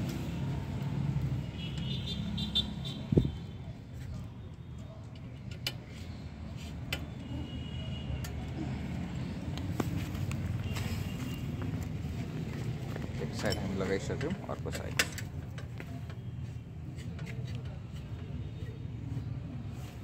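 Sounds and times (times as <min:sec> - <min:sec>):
metal clicks and taps: 0:05.1 - 0:05.9.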